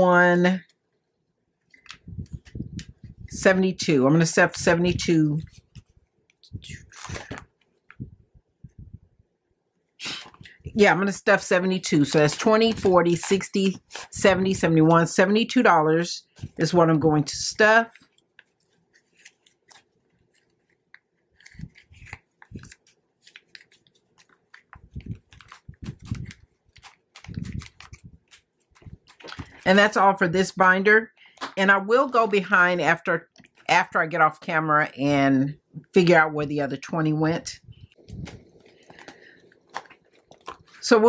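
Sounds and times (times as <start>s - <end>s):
woman speaking: 0.0s - 0.7s, 2.2s - 5.6s, 6.4s - 7.4s, 10.0s - 18.0s, 29.3s - 38.4s, 40.8s - 41.0s
paper crinkling and rustling: 6.8s - 8.0s, 11.9s - 14.2s, 18.0s - 29.8s, 37.9s - 40.9s.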